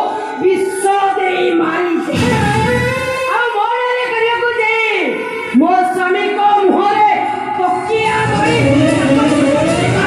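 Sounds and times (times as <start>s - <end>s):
musical accompaniment: 0.0s - 3.8s, 7.4s - 10.0s.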